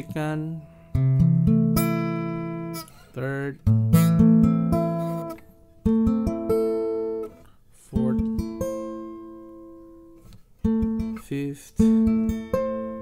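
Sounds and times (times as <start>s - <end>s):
acoustic guitar chord ringing: 0.0s - 11.2s, 11.8s - 13.0s.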